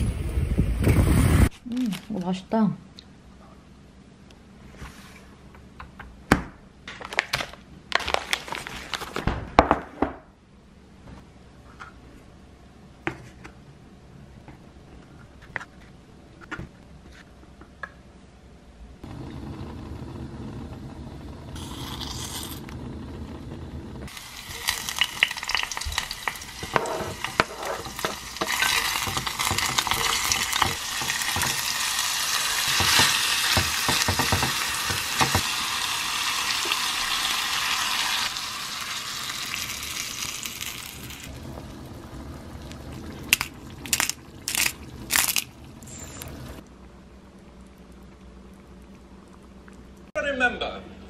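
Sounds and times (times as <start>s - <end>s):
food sizzling in oil: 24.1s - 46.6s.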